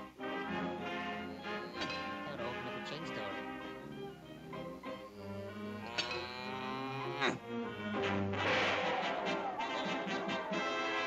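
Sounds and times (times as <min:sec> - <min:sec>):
orchestral cartoon score: 0:00.0 - 0:11.0.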